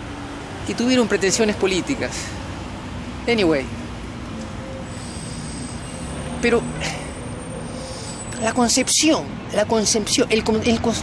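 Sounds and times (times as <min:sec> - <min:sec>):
traffic hum: 0:00.0 - 0:11.0.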